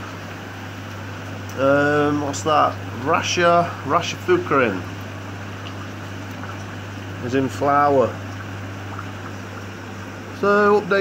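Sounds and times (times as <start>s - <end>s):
steady low hum with hiss: 0.0s - 11.0s.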